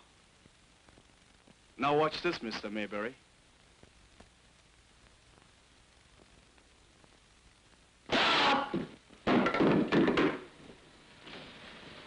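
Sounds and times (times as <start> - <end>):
heavy thuds and knocks: 8.7 - 10.5.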